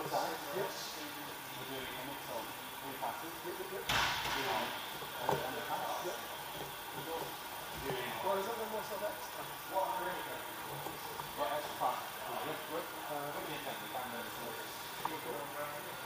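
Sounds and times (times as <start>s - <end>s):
people talking: 0.0s - 6.2s, 7.0s - 10.6s, 11.3s - 16.0s.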